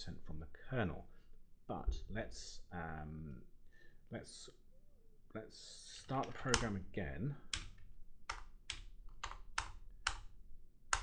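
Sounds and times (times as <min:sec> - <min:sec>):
keyboard key clicks: 0:06.2 - 0:06.7.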